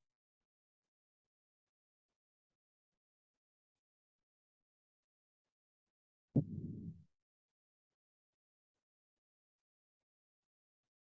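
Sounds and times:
short low thump: 6.4s - 7.0s.

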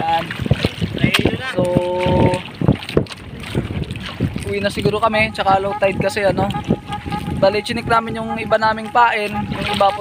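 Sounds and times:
choppy water: 0.0s - 10.0s
wind buffeting microphone: 0.0s - 10.0s.

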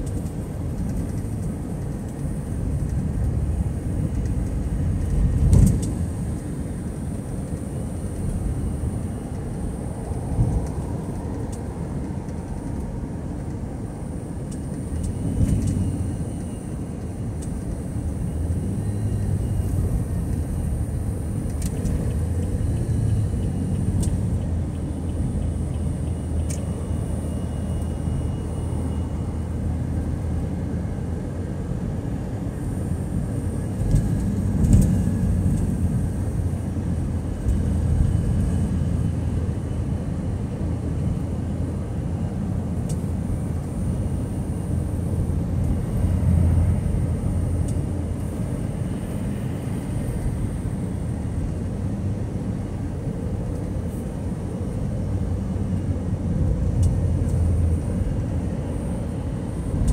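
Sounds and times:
car road and engine rumble: 0.0s - 59.9s.

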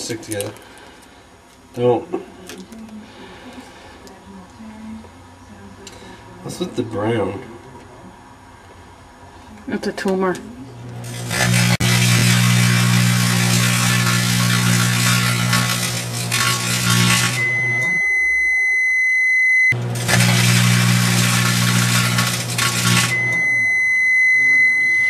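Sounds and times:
microwave oven humming: 0.0s - 25.0s
high-pitched microwave beep: 16.4s - 25.0s.

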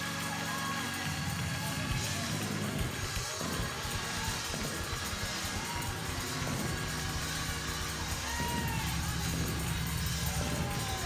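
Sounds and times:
congregation voices and shouts: 0.0s - 11.0s.

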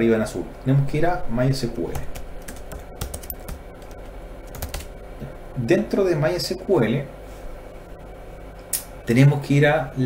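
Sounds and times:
computer keyboard keystrokes: 1.9s - 3.9s, 4.5s - 4.9s.

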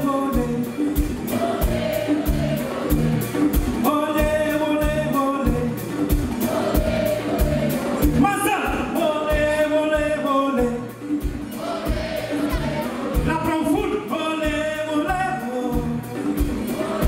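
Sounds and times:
man singing into microphone: 0.0s - 0.9s, 3.8s - 5.8s, 8.1s - 10.9s, 13.2s - 16.1s
live band music: 0.0s - 17.0s
steady drum beat: 0.0s - 17.0s.

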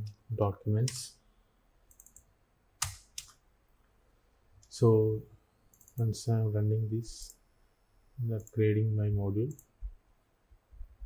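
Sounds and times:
computer keyboard keystrokes: 1.9s - 2.2s, 2.8s - 3.4s.

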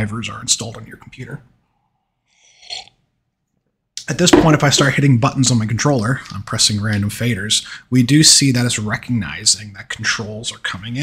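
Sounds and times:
man sipping from a mug: 2.3s - 3.0s.

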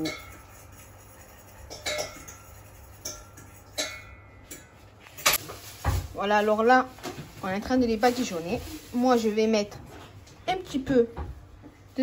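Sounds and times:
kitchen clinks and taps: 1.6s - 5.4s.

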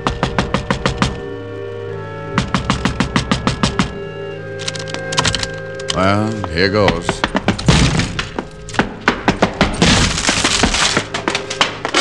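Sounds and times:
splintering wood cracks: 4.6s - 6.0s, 6.9s - 12.0s
door crash: 7.5s - 12.0s
glass breaking: 7.6s - 8.8s, 9.6s - 12.0s.

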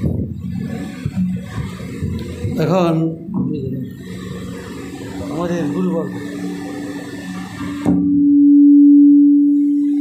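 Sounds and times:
low electronic hum: 0.0s - 10.0s.

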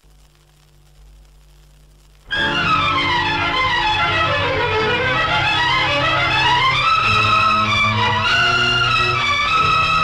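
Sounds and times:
violin section holding notes: 2.3s - 10.0s.

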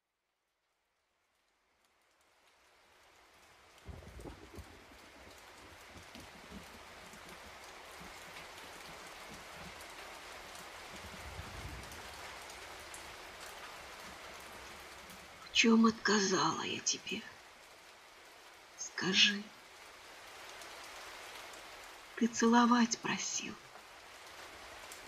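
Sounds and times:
steady rain falling: 0.2s - 25.0s.

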